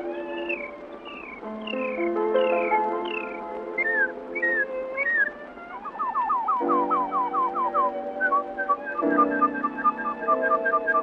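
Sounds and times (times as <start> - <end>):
band sustained chords: 0.0 - 11.0
bird-call whistling: 0.0 - 11.0.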